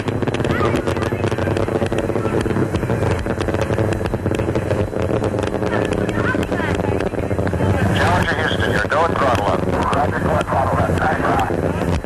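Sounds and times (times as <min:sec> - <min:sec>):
rocket engines crackling rumble: 0:00.0 - 0:12.0.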